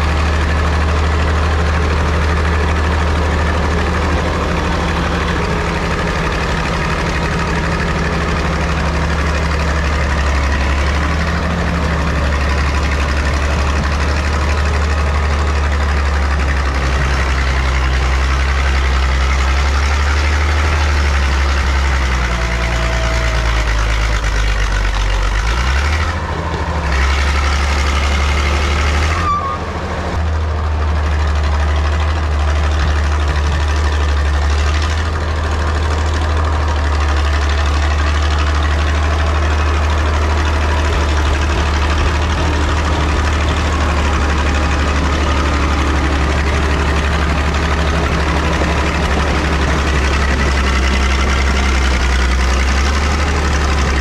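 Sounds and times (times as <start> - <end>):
diesel engine running loud: 0.0 - 54.0.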